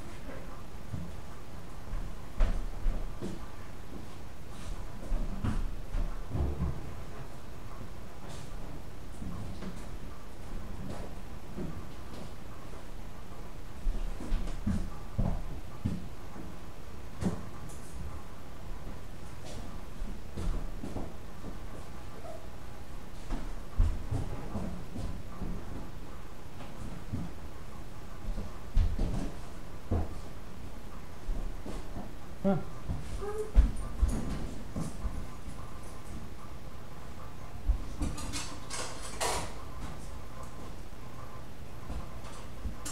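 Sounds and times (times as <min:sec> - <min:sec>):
low room hum: 0:00.0 - 0:42.9.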